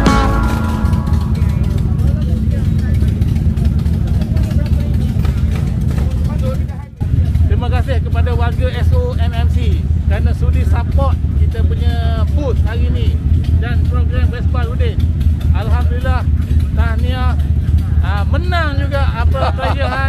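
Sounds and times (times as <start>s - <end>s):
motorcycle engine idling: 0.0s - 20.0s
voices: 0.0s - 20.0s
man speaking: 18.2s - 20.0s.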